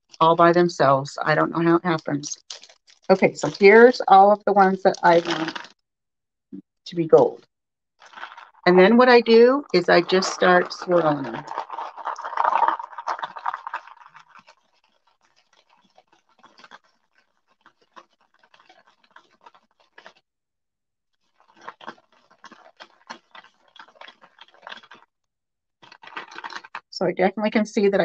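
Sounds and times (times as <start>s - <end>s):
wooden beads clicking in a paper bowl: 1.9s - 3.8s, 4.6s - 5.8s, 8.0s - 20.2s, 21.3s - 25.1s, 25.8s - 26.8s.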